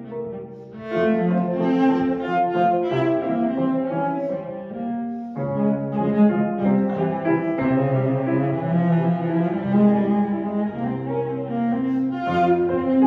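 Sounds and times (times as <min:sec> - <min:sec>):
bowed cello notes: 0:00.0 - 0:13.0
piano chords: 0:00.0 - 0:13.0.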